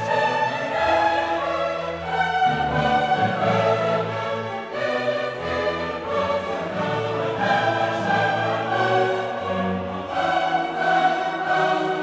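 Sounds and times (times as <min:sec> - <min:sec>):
choir singing with orchestra: 0:00.0 - 0:12.0.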